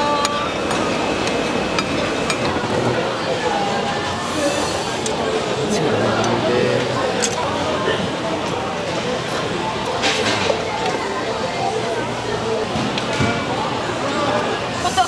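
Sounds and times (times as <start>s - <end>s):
indistinct crowd chatter: 0.0s - 15.0s.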